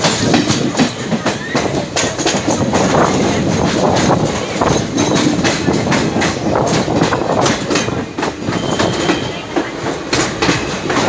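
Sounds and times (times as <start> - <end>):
train rumble: 0.0 - 11.0
wheels clattering over rail joints: 0.0 - 11.0.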